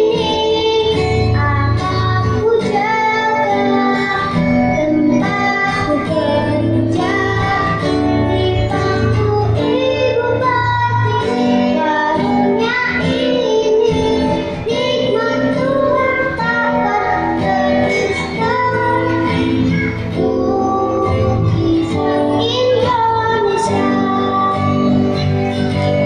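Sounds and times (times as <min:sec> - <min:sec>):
acoustic guitar: 0:00.0 - 0:26.0
girl singing: 0:00.0 - 0:26.0.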